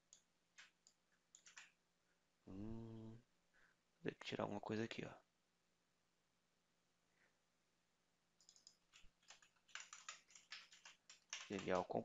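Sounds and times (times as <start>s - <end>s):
computer mouse clicks: 0.1s - 1.7s, 8.4s - 11.9s.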